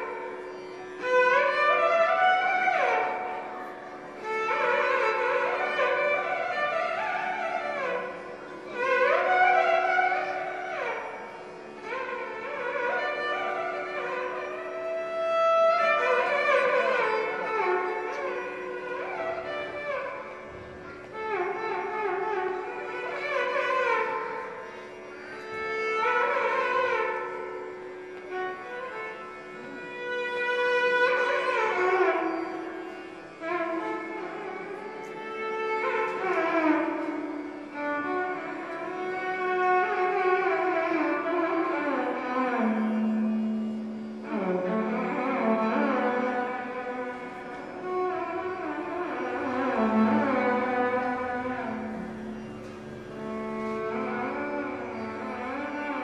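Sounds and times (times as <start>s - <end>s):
violin playing sliding melody: 0.0s - 56.0s.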